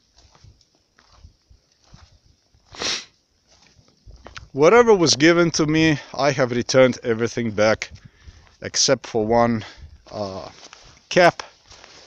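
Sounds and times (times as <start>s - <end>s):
footsteps on snow: 0.0s - 4.6s, 10.0s - 12.0s.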